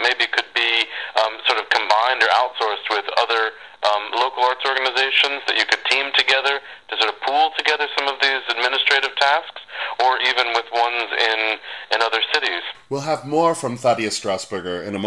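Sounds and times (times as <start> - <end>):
man talking over telephone: 0.0 - 15.0.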